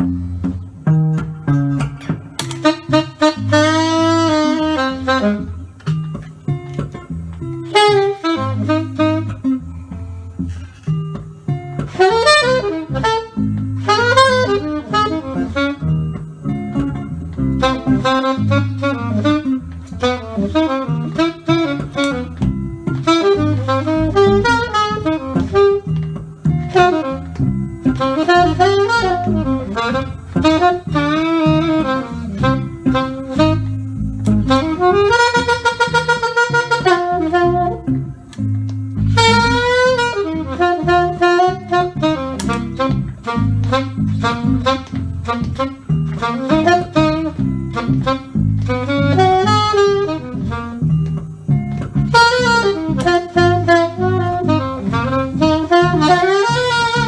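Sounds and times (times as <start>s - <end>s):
alto saxophone playing: 0.0s - 57.0s
electric guitar accompaniment: 0.0s - 57.0s.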